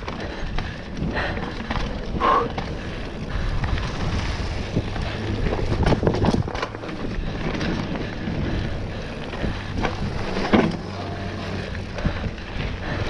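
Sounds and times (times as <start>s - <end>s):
bike knocking and rattling: 0.0s - 13.0s
tyre noise on dirt: 0.0s - 13.0s
wind rush on microphone: 0.0s - 13.0s.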